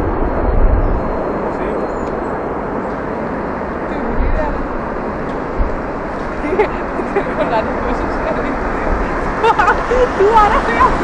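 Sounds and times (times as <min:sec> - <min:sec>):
jet engine rumble: 0:00.0 - 0:11.0.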